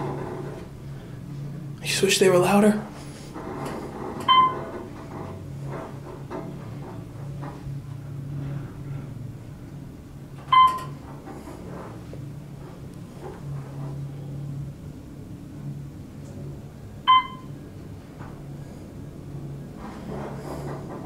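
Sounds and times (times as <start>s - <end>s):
elevator low hum: 0.0s - 21.0s
elevator chime ding: 4.2s - 4.6s, 10.5s - 10.9s, 17.1s - 17.5s.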